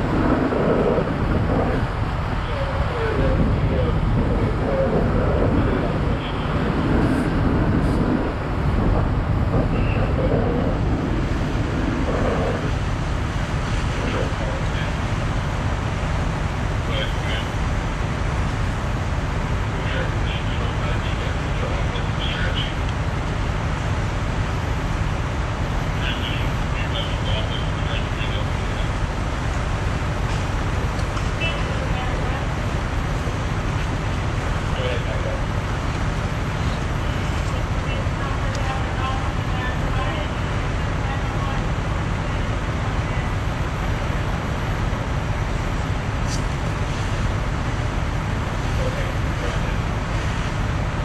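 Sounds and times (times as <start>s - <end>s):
fire truck engine running: 0.0s - 51.0s.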